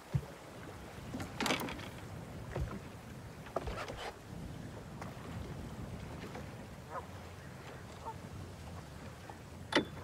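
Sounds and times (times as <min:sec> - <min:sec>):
low knock of boat: 0:00.0 - 0:00.4
wooden boat scraping: 0:01.0 - 0:04.2.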